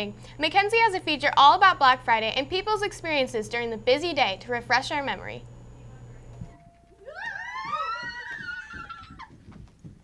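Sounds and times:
person squealing cry: 0:07.0 - 0:09.3.

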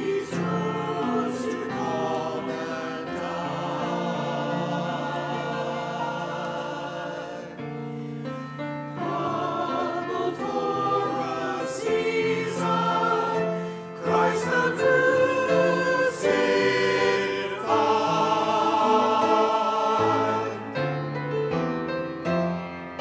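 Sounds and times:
mixed choir singing: 0:00.0 - 0:21.2.

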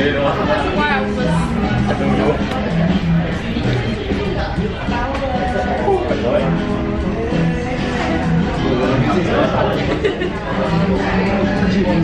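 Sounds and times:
background music: 0:00.0 - 0:12.0
man laughing: 0:09.0 - 0:10.7.

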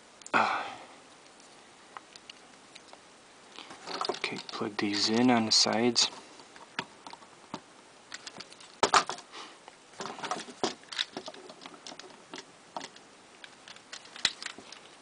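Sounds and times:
plastic toy parts clicking: 0:03.9 - 0:04.6, 0:08.1 - 0:09.2, 0:10.0 - 0:14.9.

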